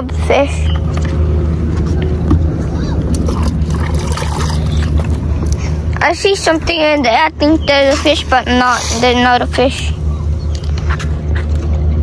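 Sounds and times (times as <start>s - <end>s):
boat engine droning: 0.0s - 12.0s.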